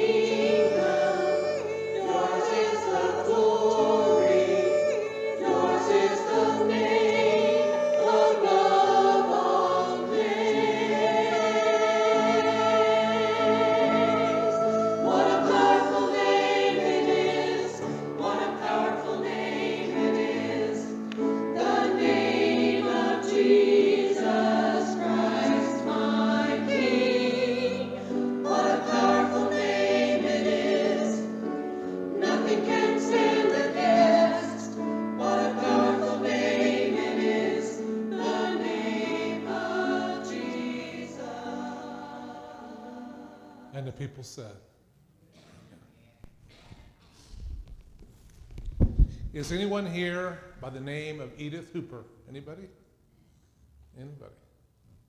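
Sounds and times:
choir singing a hymn: 0:00.0 - 0:44.0.

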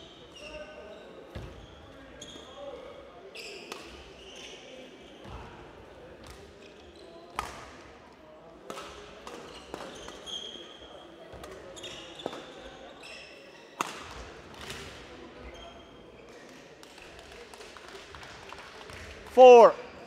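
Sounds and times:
shoes squeaking on court floor: 0:00.1 - 0:05.5, 0:06.2 - 0:07.6, 0:09.2 - 0:16.6.

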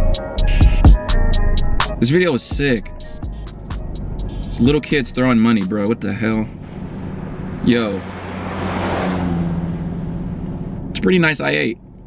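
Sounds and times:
car engine hum: 0:00.0 - 0:12.0
tires rushing on road: 0:04.0 - 0:12.0.

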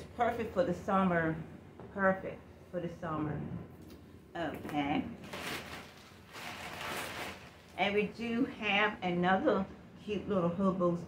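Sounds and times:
handbags rustling: 0:05.2 - 0:07.9.

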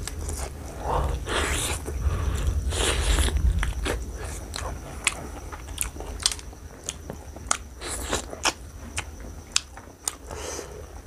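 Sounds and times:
wet chewing and biting: 0:02.8 - 0:10.3.

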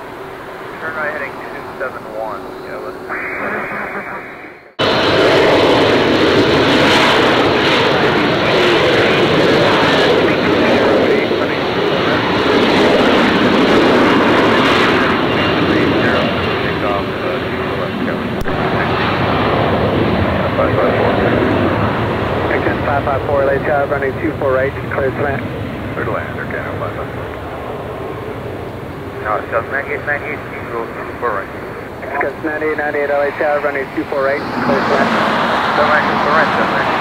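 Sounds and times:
jet engines running: 0:00.0 - 0:37.0.

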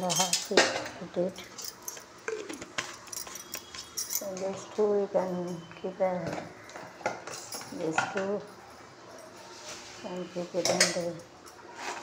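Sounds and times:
metal kitchen utensils clinking: 0:00.0 - 0:12.0.

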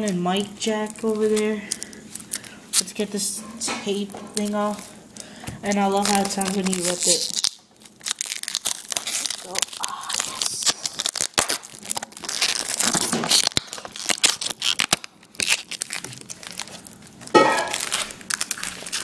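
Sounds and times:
paper and plastic crinkling: 0:00.0 - 0:19.0
packaging tape ripping: 0:00.7 - 0:03.0, 0:04.4 - 0:19.0.

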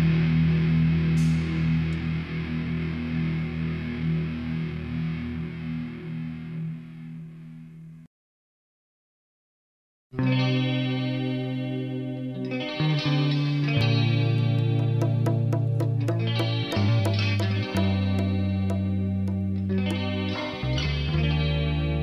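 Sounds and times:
electric guitar chord ringing: 0:00.0 - 0:07.7, 0:10.2 - 0:22.0.

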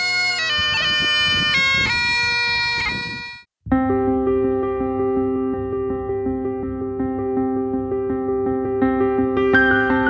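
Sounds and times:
bagpipes playing a tune: 0:00.0 - 0:03.5
background music: 0:03.7 - 0:10.0.

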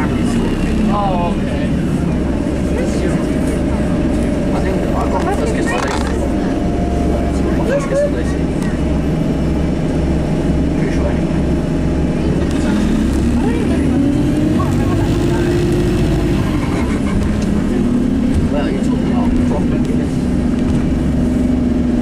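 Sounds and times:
bus engine rumble: 0:00.0 - 0:22.0
drivetrain whine: 0:00.0 - 0:22.0.

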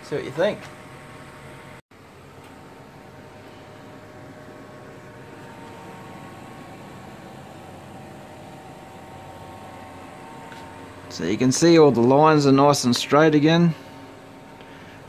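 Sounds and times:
fan hum and hiss: 0:00.0 - 0:15.0.

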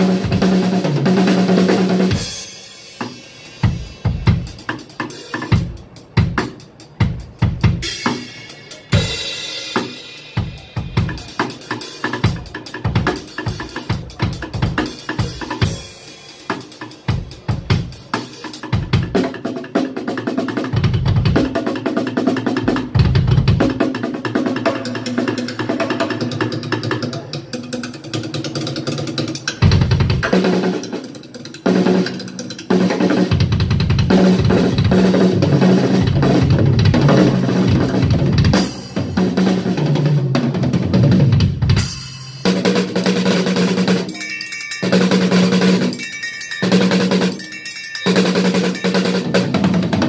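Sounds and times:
drum kit playing fast: 0:00.0 - 0:50.0.

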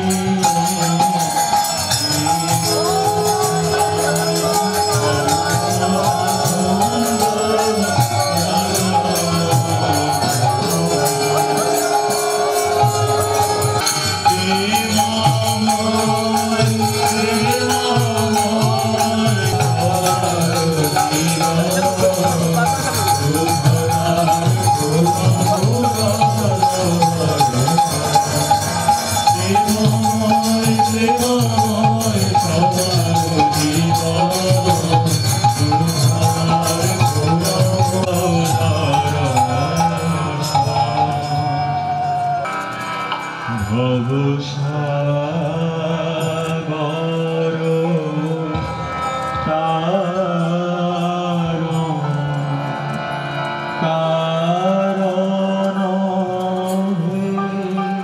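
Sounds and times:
devotional music with percussion: 0:00.0 - 0:58.0
harmonium drone: 0:00.0 - 0:58.0.

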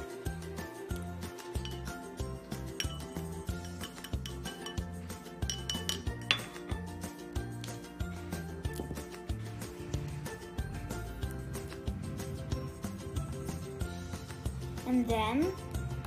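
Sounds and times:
background music with steady beat: 0:00.0 - 0:16.0
spoon clinking against glass: 0:01.5 - 0:02.1, 0:02.7 - 0:06.8.

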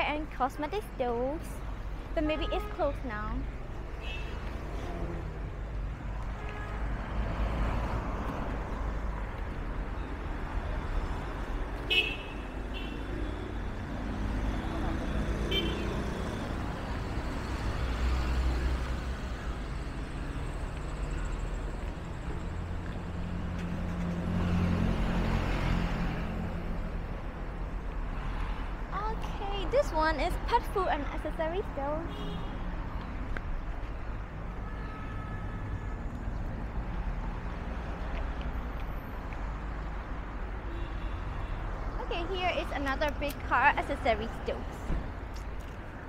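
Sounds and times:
cars driving past: 0:03.4 - 0:34.6, 0:35.6 - 0:46.0
car horn toots: 0:15.5 - 0:15.9.

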